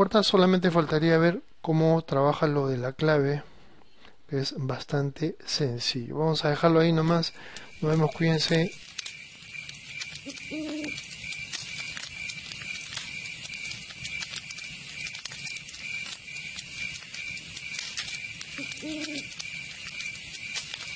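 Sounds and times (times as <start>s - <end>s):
crackling clicks: 7.0s - 20.9s
high hiss: 7.0s - 20.9s.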